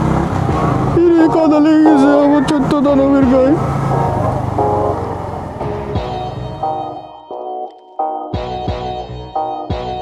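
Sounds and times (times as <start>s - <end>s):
motorcycle engine running: 0.0s - 7.1s
road and wind noise: 0.0s - 7.2s
background music: 0.0s - 10.0s.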